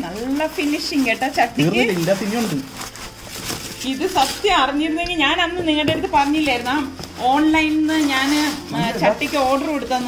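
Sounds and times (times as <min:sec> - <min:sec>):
packaging rustling: 0:00.0 - 0:10.0
people talking: 0:03.9 - 0:10.0.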